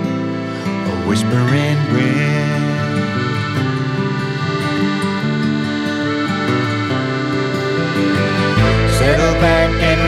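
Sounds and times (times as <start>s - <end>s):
accordion sustained chords: 0.0s - 10.0s
acoustic guitar: 0.0s - 10.0s
bass: 0.0s - 10.0s.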